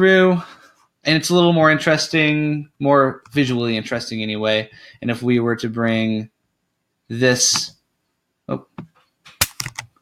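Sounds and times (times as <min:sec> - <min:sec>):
computer keys and mouse clicking: 0:09.3 - 0:10.0.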